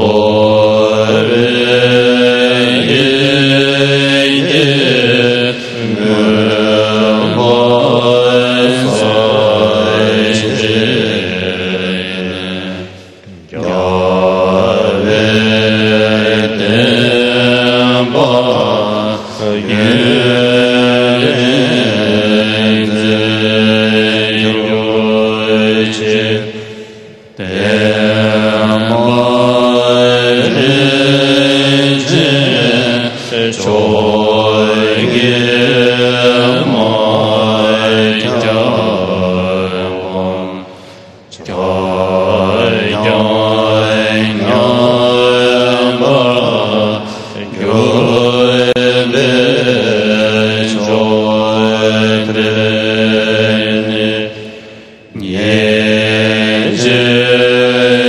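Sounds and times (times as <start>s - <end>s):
prayer chanted melodically: 0.0s - 58.0s.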